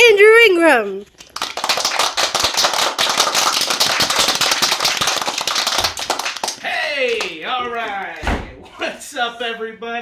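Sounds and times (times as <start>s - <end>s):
crowd applause: 1.3s - 7.4s.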